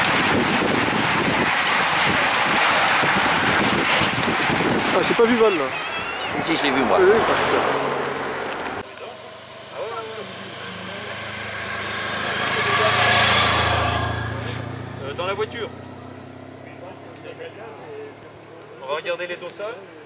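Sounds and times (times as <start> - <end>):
vehicle passing by: 0.1 - 19.2
spectators' voices: 1.9 - 8.8.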